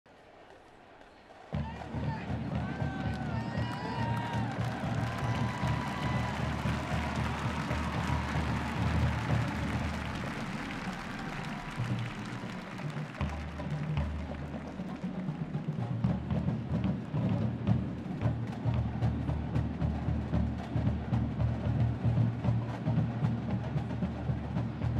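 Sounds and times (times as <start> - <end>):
drum line marching cadence: 0.3 - 24.9.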